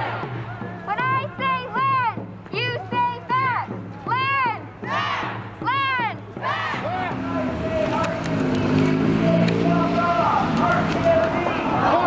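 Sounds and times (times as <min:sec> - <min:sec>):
crowd chanting: 0:00.0 - 0:00.8, 0:06.4 - 0:12.0.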